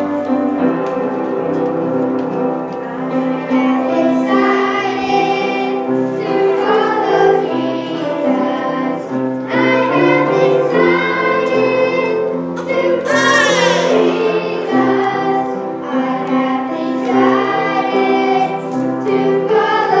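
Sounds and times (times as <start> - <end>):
youth choir singing: 3.4 - 20.0.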